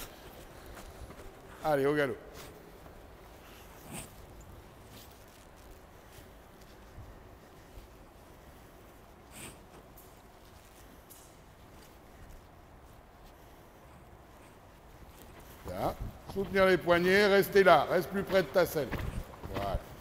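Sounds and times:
horse moving on sand: 0.0 - 20.0
soft breathy noises: 2.3 - 16.2.

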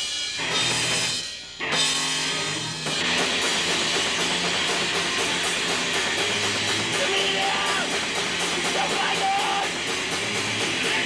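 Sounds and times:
bass guitar: 0.0 - 11.0
cymbal strokes: 0.0 - 11.0
distorted electric guitar: 0.0 - 11.0
drum kit: 0.0 - 11.0.

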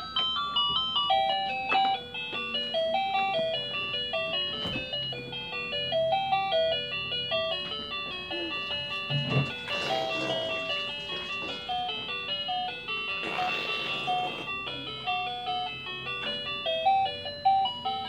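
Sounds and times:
electronic toy melody: 0.0 - 18.0.

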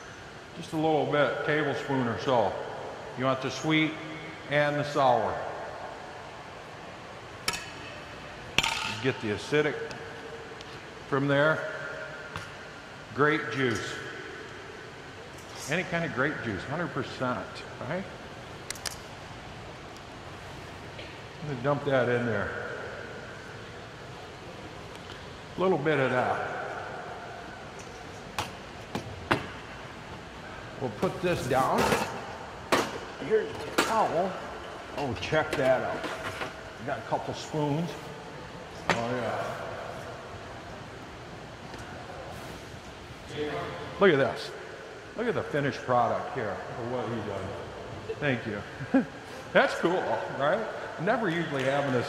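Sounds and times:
faint room noise: 0.0 - 52.0.

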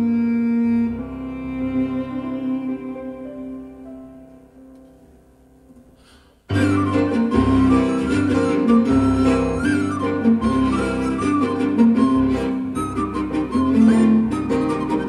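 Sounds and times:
bowed viola melody: 0.0 - 4.4, 6.5 - 15.0
piano chords: 0.0 - 15.0.

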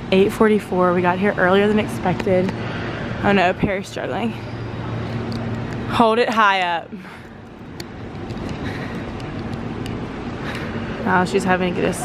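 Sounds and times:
background noise wash: 0.0 - 12.0
steady low hum: 0.0 - 12.0.

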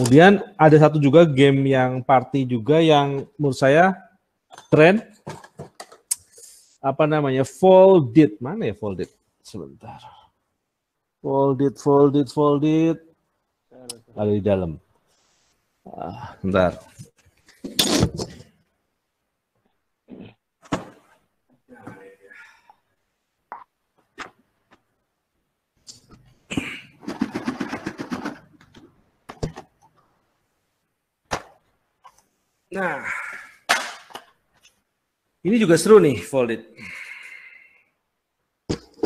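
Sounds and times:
objects knocking: 4.5 - 6.1, 26.6 - 29.8, 38.7 - 39.0.

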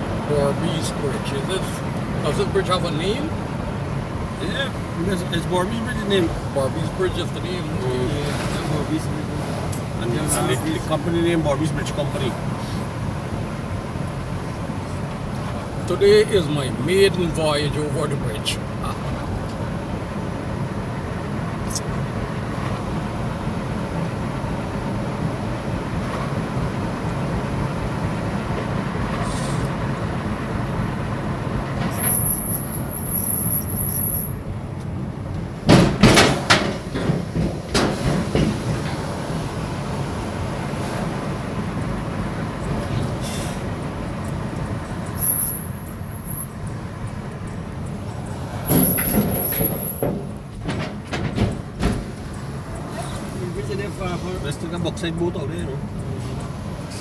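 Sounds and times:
car road and engine noise: 0.0 - 57.0
loud clunks and rattles: 35.5 - 40.0, 48.6 - 52.6.

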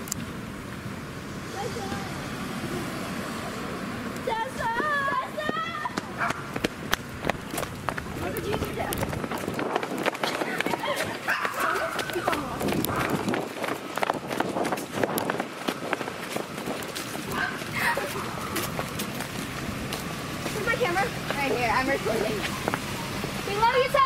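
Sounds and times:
indistinct talking: 4.2 - 6.6, 8.0 - 13.4, 17.3 - 24.0
rapid footsteps on concrete: 4.6 - 23.4.

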